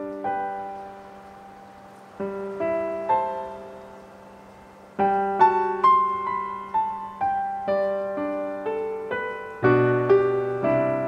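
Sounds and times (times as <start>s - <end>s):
slow piano playing: 0.0s - 11.0s.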